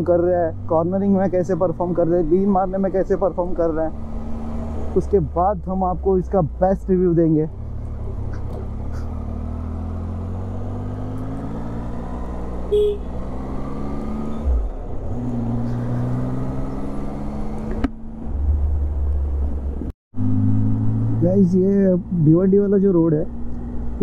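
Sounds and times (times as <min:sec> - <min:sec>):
road and wind noise: 0:00.0 - 0:24.0
motorcycle engine accelerating: 0:00.5 - 0:05.3, 0:07.5 - 0:22.2.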